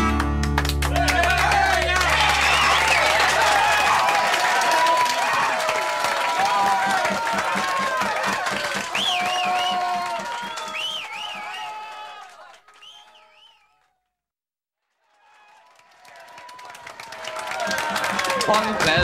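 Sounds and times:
crowd applauding and cheering: 0:00.0 - 0:13.9, 0:14.9 - 0:19.0
shouts and whistles: 0:00.9 - 0:13.9.

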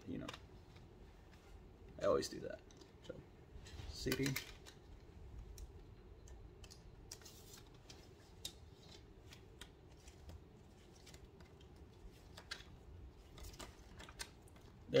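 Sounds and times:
paper booklet rustling: 0:06.6 - 0:15.0.

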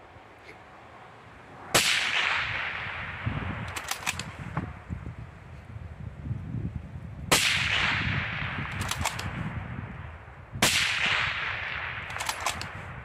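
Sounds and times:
rifle shots with echo: 0:01.7 - 0:04.4, 0:07.3 - 0:09.6, 0:10.6 - 0:13.0
short sharp rifle clicks: 0:03.7 - 0:04.4, 0:08.7 - 0:09.4, 0:12.0 - 0:12.8.

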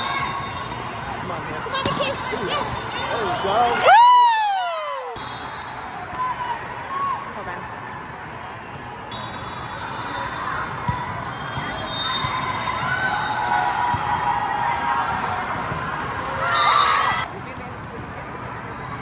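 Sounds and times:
din of busy hall: 0:00.0 - 0:19.0
spectators cheering: 0:03.2 - 0:07.3.

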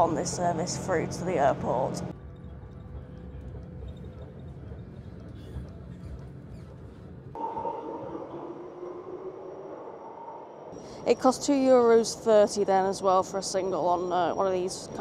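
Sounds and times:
electric train whine: 0:00.0 - 0:15.0
train interior rumble and hum: 0:00.0 - 0:15.0.

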